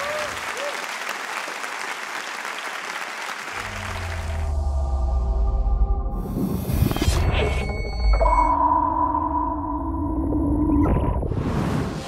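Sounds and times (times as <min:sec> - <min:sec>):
steady electronic tones: 0:04.5 - 0:11.2.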